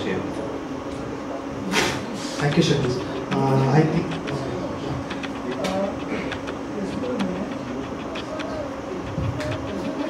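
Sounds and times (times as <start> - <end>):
low indistinct voices: 0.0 - 10.0.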